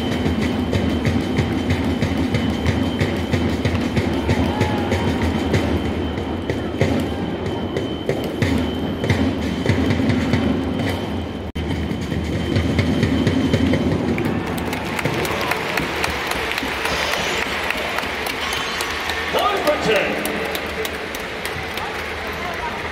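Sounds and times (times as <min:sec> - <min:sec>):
taiko drums beating: 0:00.0 - 0:19.4
crowd noise: 0:00.0 - 0:22.9.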